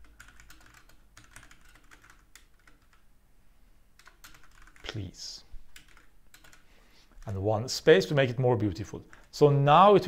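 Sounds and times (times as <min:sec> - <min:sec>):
typing on computer keyboard: 0:00.0 - 0:03.0, 0:04.0 - 0:05.0, 0:05.7 - 0:07.3.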